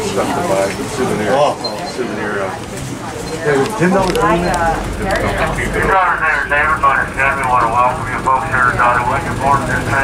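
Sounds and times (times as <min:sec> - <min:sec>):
tram running noise: 0:00.0 - 0:10.0
voices talking: 0:00.0 - 0:10.0.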